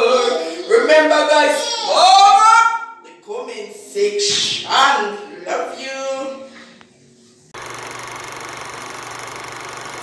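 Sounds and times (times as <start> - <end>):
machine running with fast rattle: 7.6 - 10.0.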